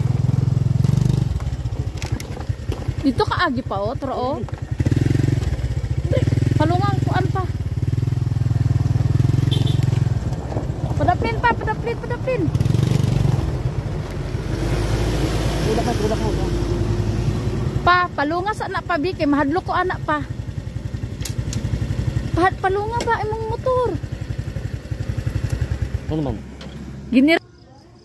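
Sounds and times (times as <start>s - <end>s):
motorcycle engine running: 0.0s - 28.0s.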